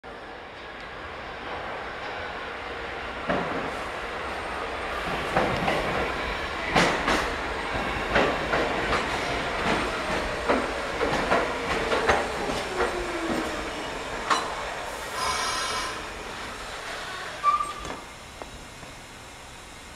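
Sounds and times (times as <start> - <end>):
subway train rumble: 0.0 - 19.9
wheels clacking over rail joints: 5.0 - 14.7.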